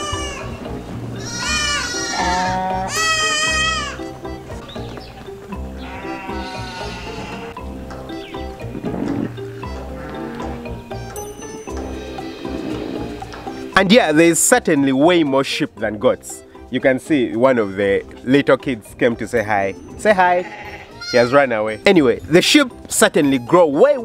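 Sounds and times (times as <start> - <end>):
sheep and goats bleating: 0.0 - 0.6, 1.2 - 4.4, 5.5 - 7.6, 9.0 - 13.8, 20.1 - 21.6
background music: 0.0 - 24.0.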